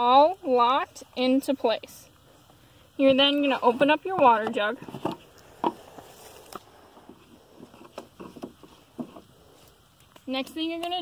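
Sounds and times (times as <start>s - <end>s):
soft rustling: 2.2s - 11.0s.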